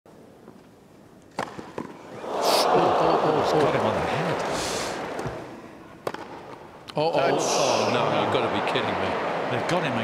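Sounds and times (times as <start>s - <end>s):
racket hitting tennis ball: 1.3s - 2.0s, 6.0s - 6.6s.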